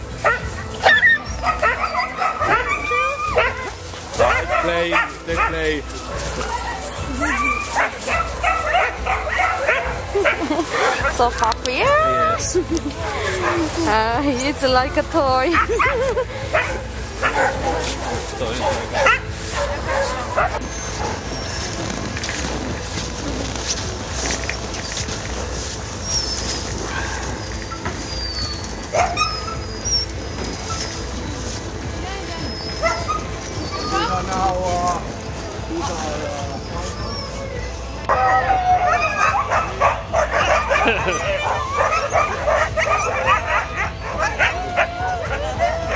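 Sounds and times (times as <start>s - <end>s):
husky dogs whining and yipping: 0.0s - 45.9s.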